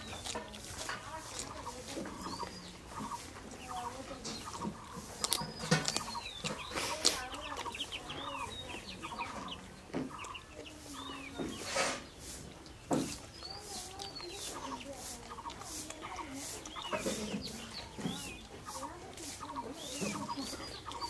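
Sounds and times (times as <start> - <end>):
chewing and mouth smacks: 0.0 - 10.7, 12.4 - 18.6
chickens clucking: 0.0 - 21.0
small birds chirping: 0.0 - 21.0.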